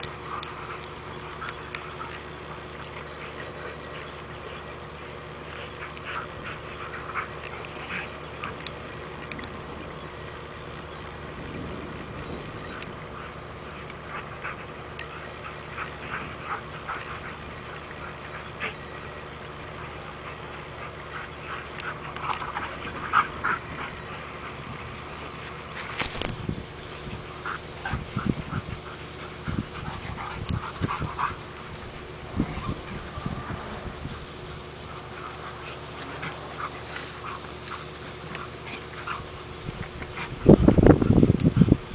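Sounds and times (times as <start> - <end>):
dogs whining while playing: 0.0 - 41.9.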